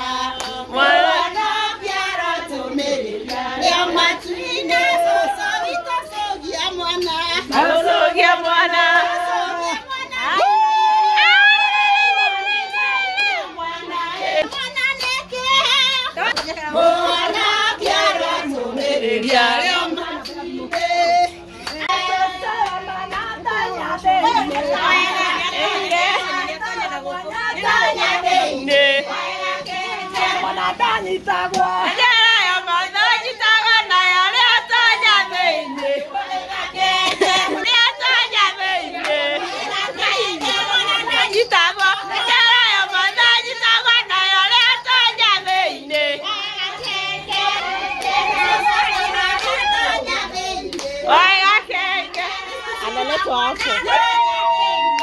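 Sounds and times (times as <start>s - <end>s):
women singing together: 0.0s - 55.0s
hand claps: 50.6s - 51.0s.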